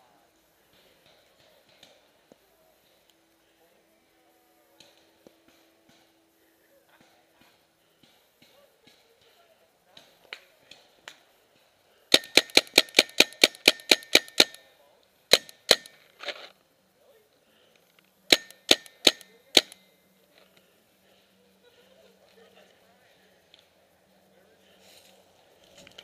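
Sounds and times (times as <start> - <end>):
paintball marker firing: 12.1 - 14.7, 15.3 - 16.0, 18.3 - 19.8.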